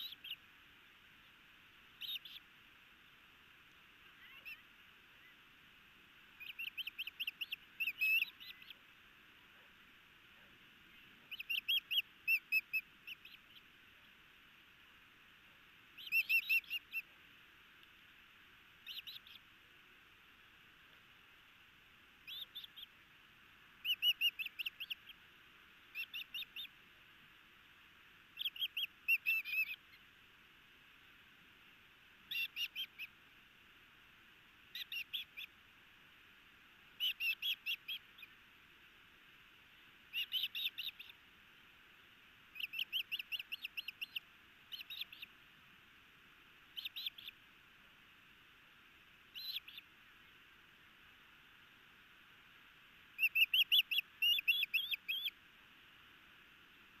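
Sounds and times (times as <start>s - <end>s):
osprey whistled chirps: 0.0s - 0.4s, 2.0s - 2.5s, 4.1s - 5.4s, 6.4s - 8.8s, 11.3s - 13.6s, 15.9s - 17.1s, 18.8s - 19.4s, 22.2s - 22.9s, 23.8s - 25.1s, 25.9s - 26.7s, 28.4s - 29.9s, 32.3s - 33.1s, 34.7s - 35.5s, 37.0s - 38.3s, 40.1s - 41.2s, 42.5s - 45.3s, 46.7s - 47.4s, 49.3s - 49.8s, 53.2s - 55.4s.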